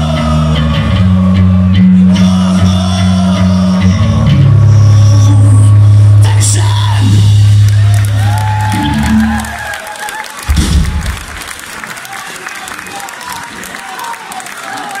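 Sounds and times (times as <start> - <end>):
low bass note: 4.4 - 9.6
crowd cheering and applauding: 6.4 - 15.0
low thump: 10.5 - 11.4.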